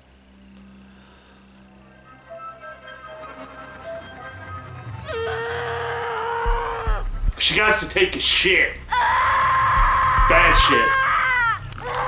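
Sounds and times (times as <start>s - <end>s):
woman screaming: 5.1s - 7.0s, 8.9s - 12.0s
deep thuds: 6.4s - 8.2s, 9.6s - 11.0s.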